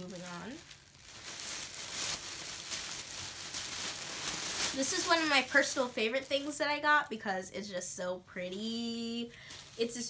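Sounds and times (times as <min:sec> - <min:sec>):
clothes and packaging rustling: 0:00.0 - 0:07.2, 0:08.5 - 0:10.0.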